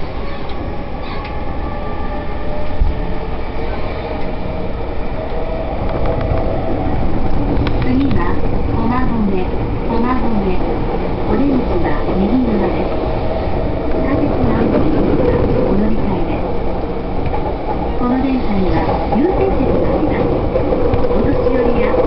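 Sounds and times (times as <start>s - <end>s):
train wheels rumbling on rails: 0.0s - 22.0s.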